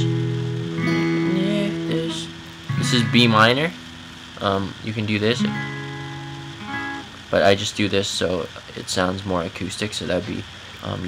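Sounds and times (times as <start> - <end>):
acoustic guitar chord strummed: 0.0 - 8.3.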